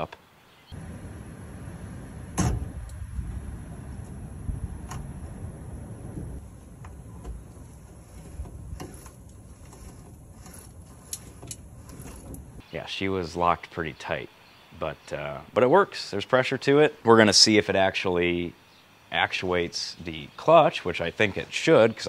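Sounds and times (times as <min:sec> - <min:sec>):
low rumble: 0:00.8 - 0:12.6.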